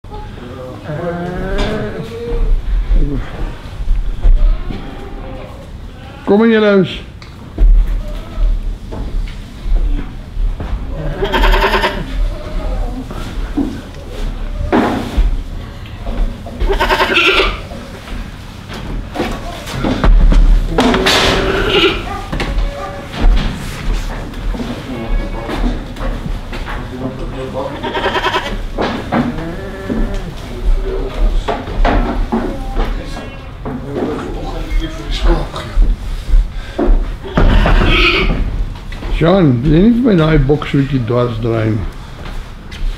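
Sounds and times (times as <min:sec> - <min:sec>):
goats bleating: 0:04.4 - 0:06.3, 0:10.9 - 0:13.0, 0:16.6 - 0:17.7, 0:20.8 - 0:22.1, 0:27.6 - 0:28.6, 0:37.2 - 0:38.4.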